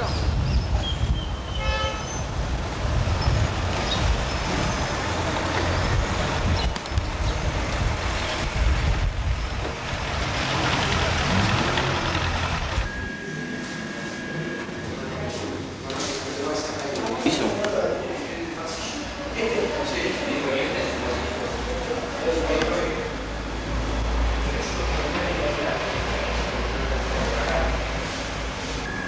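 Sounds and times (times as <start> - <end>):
traffic rumble: 0.0 - 29.0
car horn toot: 1.5 - 2.2
faint steady high tone: 12.8 - 15.6.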